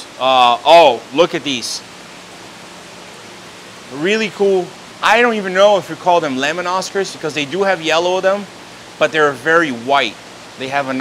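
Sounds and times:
aquarium air bubbling: 0:00.0 - 0:11.0
faint steady hum: 0:00.0 - 0:11.0
water circulating through tanks: 0:00.0 - 0:11.0.

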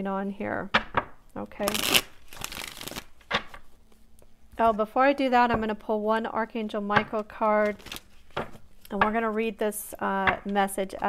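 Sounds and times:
cards shuffling: 0:01.6 - 0:04.0, 0:07.6 - 0:09.0.

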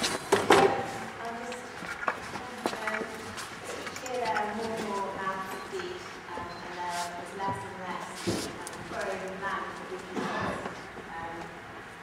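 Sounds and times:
indistinct voices in a hall: 0:00.0 - 0:12.0.

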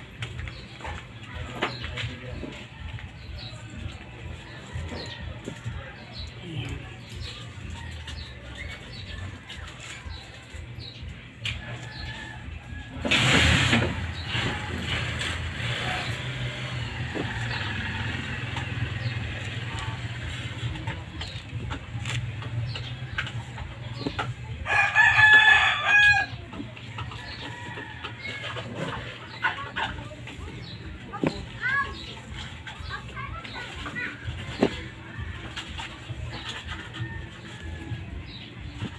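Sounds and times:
rooster crowing: 0:24.6 - 0:26.4.

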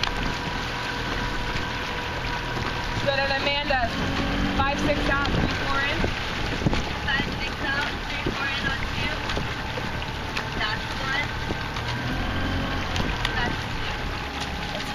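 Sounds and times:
motorboat engine running: 0:00.0 - 0:14.9
wind on microphone: 0:00.0 - 0:14.9.

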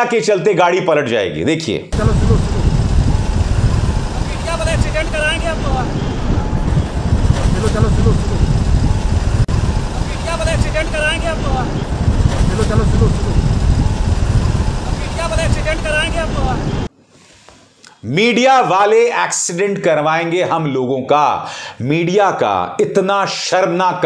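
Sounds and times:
road and wind rumble: 0:02.0 - 0:16.9.

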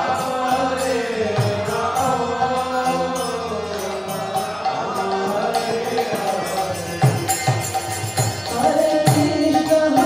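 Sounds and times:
harmonium chords: 0:00.0 - 0:10.0
man singing devotional chant: 0:00.0 - 0:10.0.

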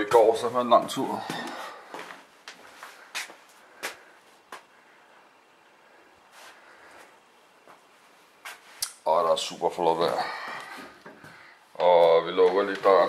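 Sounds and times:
light footsteps: 0:00.1 - 0:05.0, 0:06.3 - 0:13.0.

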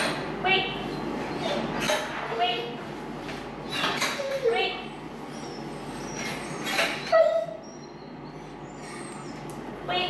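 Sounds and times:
dog whining: 0:01.3 - 0:01.8, 0:03.7 - 0:09.6.

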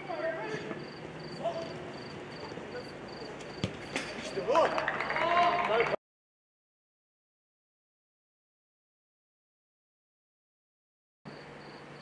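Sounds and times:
football kick thud: 0:03.5 - 0:04.2.

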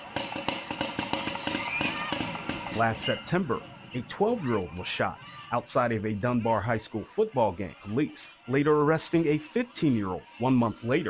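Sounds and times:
faint crowd voices: 0:01.4 - 0:11.0.

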